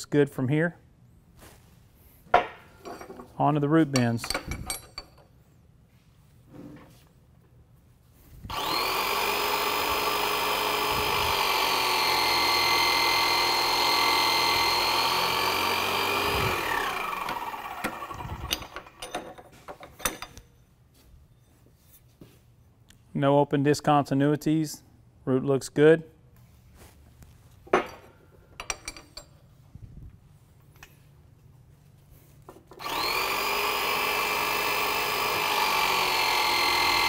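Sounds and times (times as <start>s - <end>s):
hydraulic pump motor whining: 8.4s - 19.1s, 32.8s - 37.0s.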